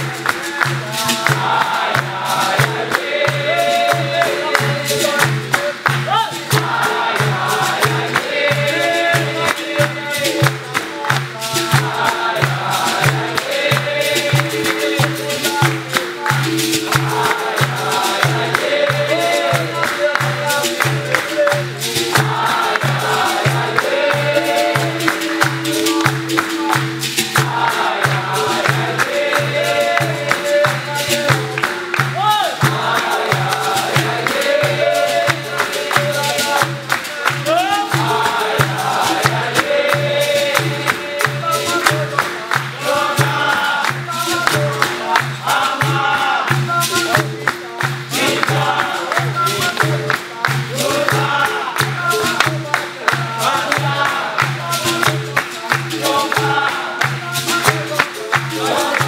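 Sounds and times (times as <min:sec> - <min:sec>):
atabaque drum beat: 0:00.0 - 0:59.0
group singing: 0:00.0 - 0:59.0
hand clapping: 0:00.0 - 0:59.0.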